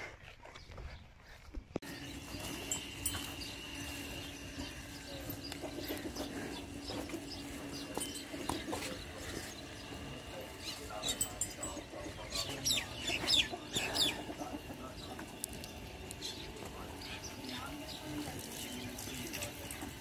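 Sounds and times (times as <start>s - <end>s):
farm animal sounds: 0.0s - 20.0s.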